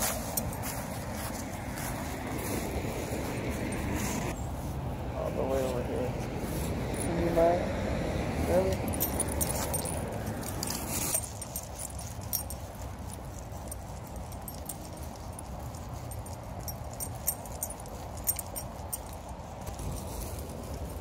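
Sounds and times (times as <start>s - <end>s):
sharp clicks and jingles: 0.0s - 2.1s, 6.8s - 7.4s, 8.5s - 21.0s
dog rustling on frosty grass: 0.0s - 7.6s, 8.4s - 21.0s.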